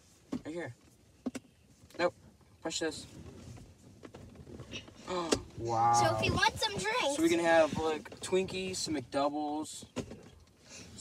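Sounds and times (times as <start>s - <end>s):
car cabin hum: 3.5s - 9.2s.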